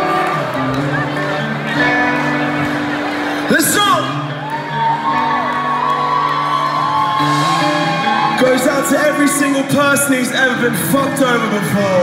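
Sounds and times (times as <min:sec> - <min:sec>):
crowd whooping: 0:00.0 - 0:10.6.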